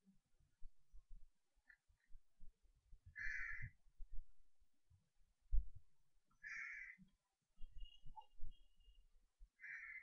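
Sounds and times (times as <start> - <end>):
harsh bird calls: 6.4 - 7.1, 9.6 - 10.0.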